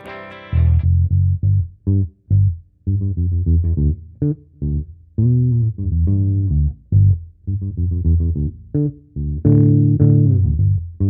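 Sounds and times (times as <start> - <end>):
bass guitar short low notes: 0.4 - 11.0.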